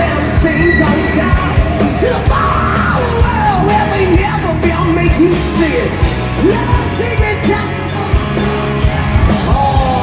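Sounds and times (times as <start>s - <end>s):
person yelling over music: 0.0s - 8.2s
bass guitar: 0.0s - 10.0s
distorted electric guitar: 0.0s - 10.0s
drums: 0.0s - 10.0s.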